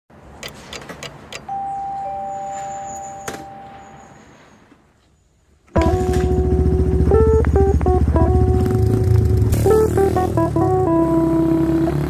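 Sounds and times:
two-note chime: 1.5s - 4.2s, 5.8s - 8.2s.

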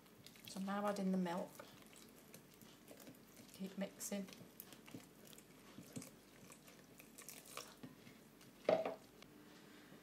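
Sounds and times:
spoon stirring batter in bowl: 0.0s - 8.6s
milk pouring: 5.9s - 7.9s.

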